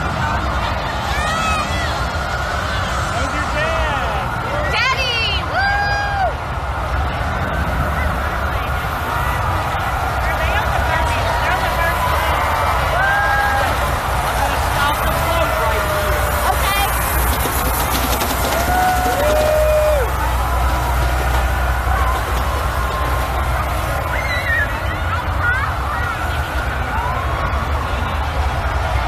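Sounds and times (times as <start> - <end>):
crowd din: 0.0 - 29.0
people whooping and cheering: 0.0 - 29.0.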